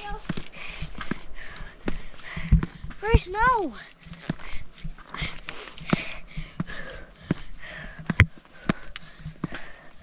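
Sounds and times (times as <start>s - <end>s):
footsteps on stone stairs: 0.0s - 10.0s.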